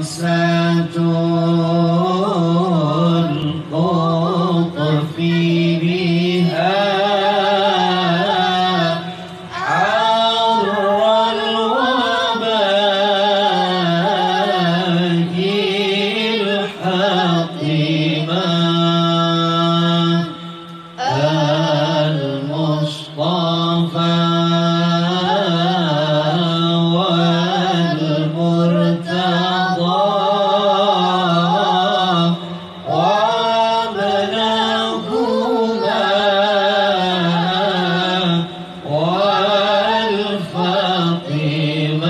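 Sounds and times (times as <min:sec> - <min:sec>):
person chanting devotional verses: 0:00.0 - 0:42.0.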